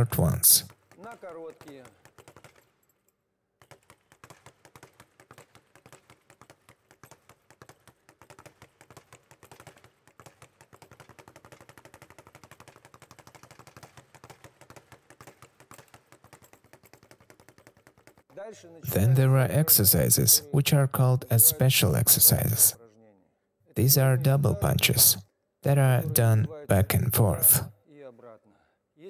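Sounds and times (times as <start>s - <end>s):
speed bag rattling under punches: 3.6s - 18.2s.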